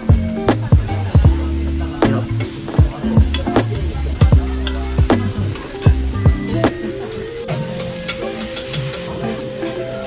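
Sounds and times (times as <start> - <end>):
background music: 0.0 - 10.0
cabbage sizzling on a griddle: 0.0 - 10.0.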